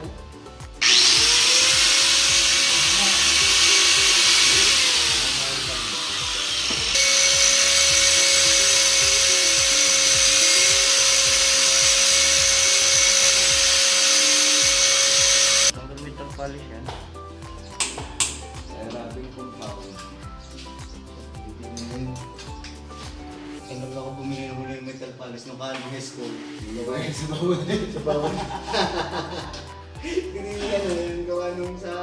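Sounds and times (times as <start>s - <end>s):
angle grinder whining: 0.8s - 15.8s.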